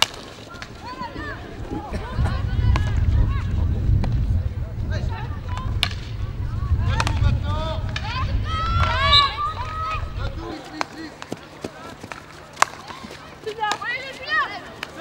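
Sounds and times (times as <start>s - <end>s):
players shouting: 0.5s - 15.0s
wind rumble on microphone: 0.7s - 10.6s
hockey sticks striking ball: 5.5s - 6.2s, 6.9s - 7.3s, 10.5s - 14.0s.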